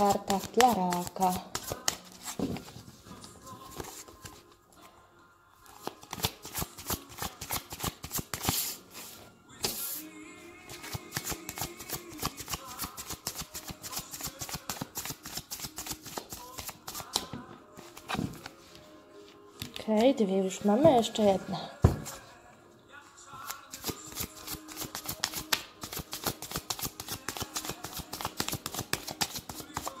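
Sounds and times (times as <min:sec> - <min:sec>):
cards being shuffled: 0:00.0 - 0:04.5, 0:05.7 - 0:10.0, 0:10.7 - 0:18.8, 0:23.4 - 0:30.0
faint background song: 0:00.0 - 0:30.0.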